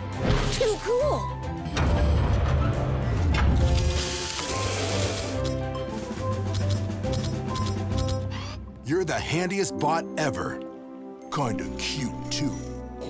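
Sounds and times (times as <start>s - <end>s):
background music with held notes: 0.0s - 13.0s
cartoon mechanical hiss: 3.8s - 5.4s.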